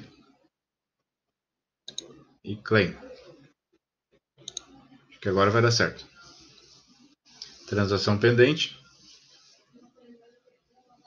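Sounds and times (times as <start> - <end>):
computer mouse clicks: 1.9 - 2.2, 4.4 - 4.8.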